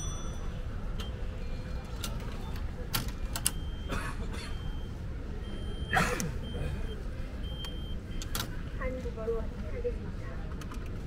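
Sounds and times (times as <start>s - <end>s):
station background hum: 0.0s - 11.0s
short high beeps: 3.5s - 3.9s, 4.5s - 8.3s.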